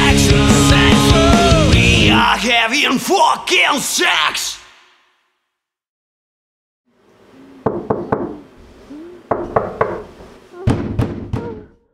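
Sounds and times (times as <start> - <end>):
knuckles knocking on wooden door: 7.6 - 8.5, 9.3 - 11.7
thump on door: 9.3 - 11.7.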